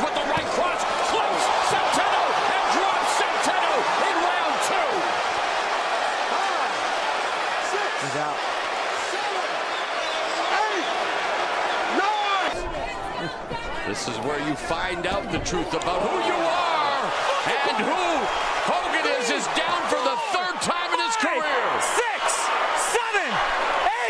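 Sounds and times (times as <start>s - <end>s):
crowd cheering and shouting: 0.0s - 24.0s.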